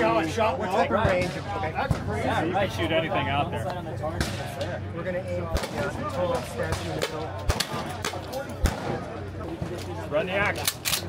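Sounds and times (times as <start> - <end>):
voices: 0.0 - 11.0
gunshots: 5.5 - 9.7.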